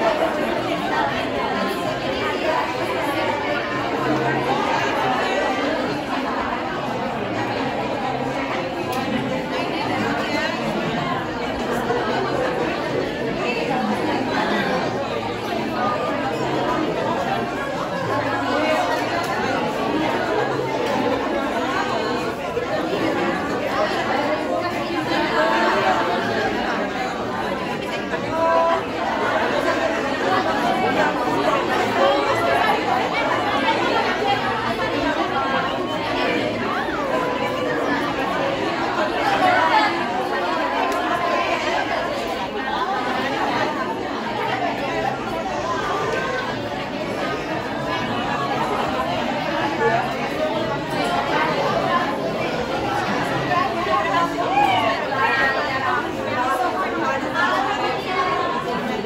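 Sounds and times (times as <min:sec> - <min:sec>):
crowd chatter: 0:00.0 - 0:59.0.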